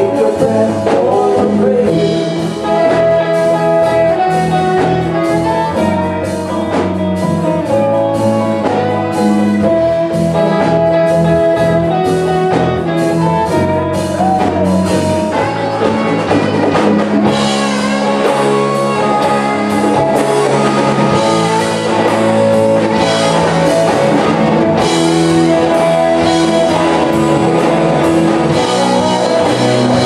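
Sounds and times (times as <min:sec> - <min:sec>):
bass: 0:00.0 - 0:30.0
drum kit: 0:00.0 - 0:30.0
electric guitars: 0:00.0 - 0:30.0
saxophone lead line: 0:00.0 - 0:30.0.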